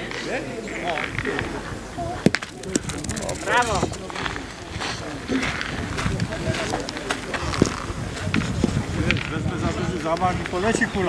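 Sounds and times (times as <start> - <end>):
background voices: 2.0 - 5.2
petanque balls clicking: 2.3 - 4.2.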